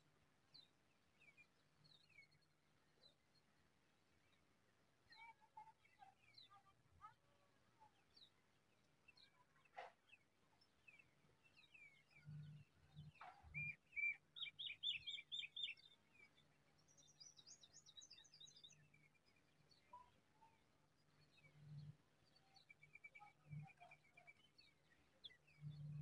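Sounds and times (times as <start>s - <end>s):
small birds chirping: 0.4s - 26.0s.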